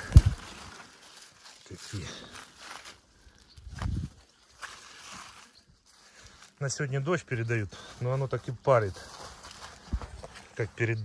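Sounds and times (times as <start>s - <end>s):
rustling through plants and grass: 0.0s - 11.0s.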